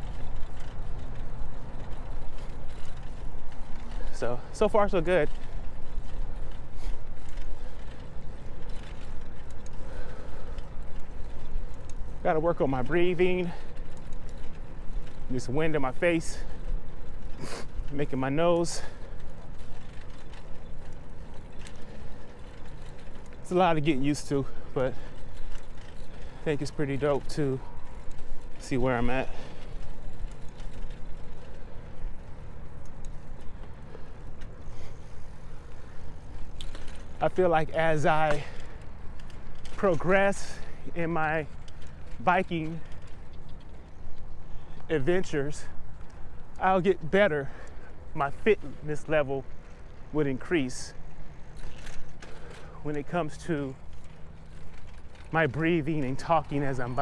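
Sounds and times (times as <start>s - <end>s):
bicycle road noise: 0.0s - 57.0s
faint bike mechanical clicks: 0.0s - 57.0s
tyre noise: 0.0s - 57.0s
faint clicks: 29.5s - 37.2s.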